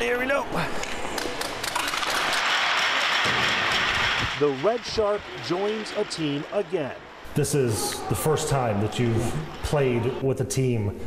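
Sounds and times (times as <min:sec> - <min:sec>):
people applauding: 0:00.8 - 0:07.8.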